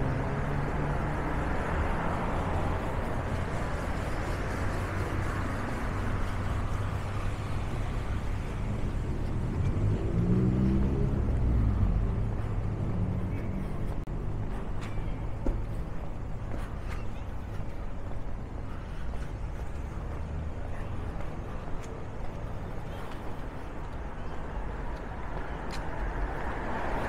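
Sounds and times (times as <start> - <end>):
street traffic passing: 0.0 - 27.0.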